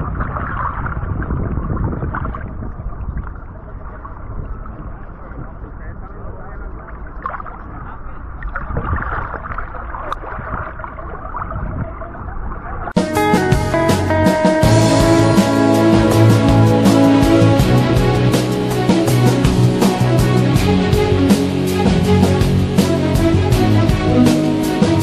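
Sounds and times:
water sloshing against boat hull: 0.0s - 12.9s
low rumble: 13.2s - 25.0s.

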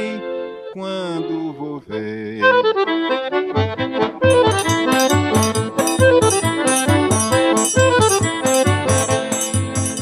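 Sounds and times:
accordion melody: 0.0s - 10.0s
light bright percussion: 4.3s - 10.0s.

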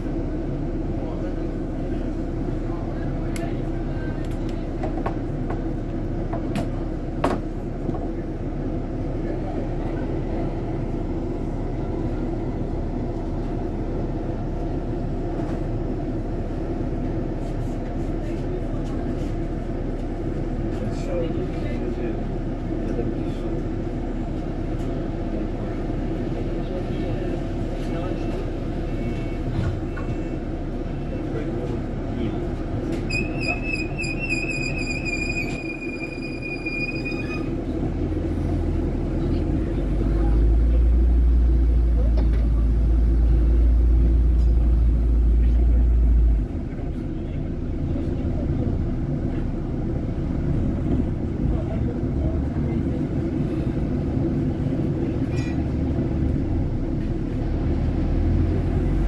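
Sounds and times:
bus interior low rumble: 0.0s - 59.0s.

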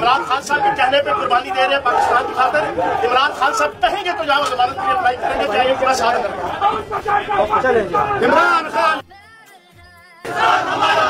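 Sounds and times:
men talking over one another: 0.0s - 9.0s.

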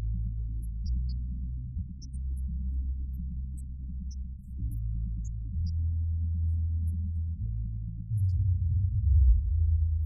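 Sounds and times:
deep synth-bass note: 3.7s - 10.0s.

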